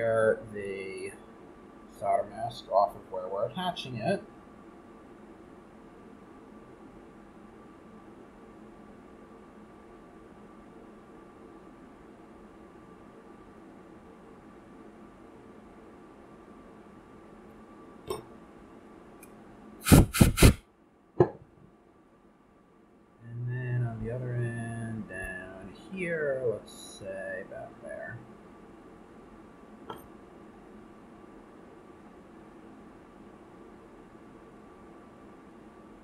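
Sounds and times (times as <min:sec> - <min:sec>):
faint hum with thin whine: 0:00.0 - 0:36.0.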